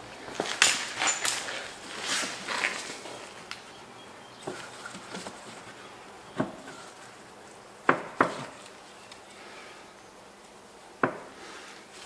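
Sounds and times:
rubber scrapes and rustles: 0.3 - 3.6, 4.4 - 7.4.

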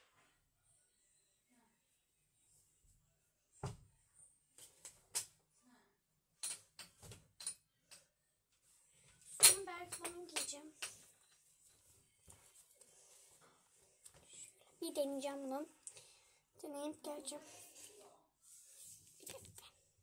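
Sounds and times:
girl's voice: 14.7 - 15.8, 16.6 - 17.7.

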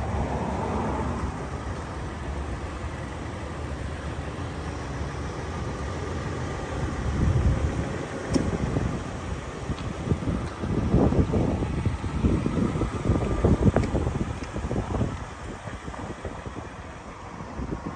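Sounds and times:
road traffic noise: 0.0 - 17.9
wind rumbling on microphone: 6.9 - 17.9.

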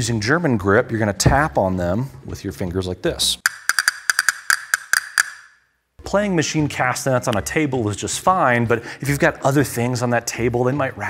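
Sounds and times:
castanet wooden clicks: 3.5 - 5.6.

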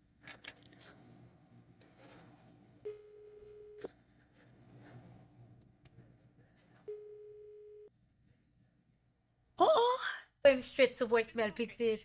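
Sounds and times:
telephone tone: 2.8 - 3.9, 6.9 - 7.9.

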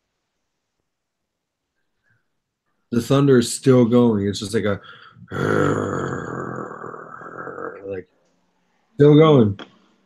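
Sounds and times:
man imitating thunder rumble: 5.2 - 8.0.

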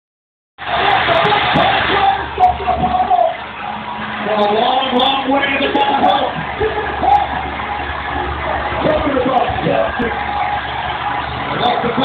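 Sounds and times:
arena crowd noise through tv speaker: 0.6 - 12.0.

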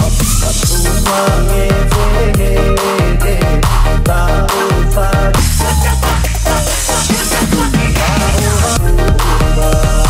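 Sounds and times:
breakbeat dance music: 0.0 - 10.0.

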